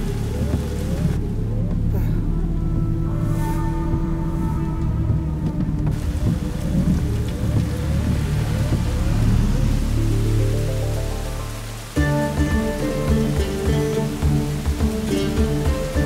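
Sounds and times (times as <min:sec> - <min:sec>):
heavy rain pouring: 0:00.0 - 0:16.0
music: 0:00.0 - 0:16.0.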